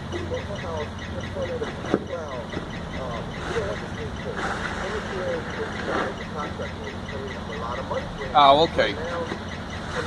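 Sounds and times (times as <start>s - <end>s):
muffled voices talking: 0.0s - 10.0s
truck engine idling: 0.0s - 10.0s.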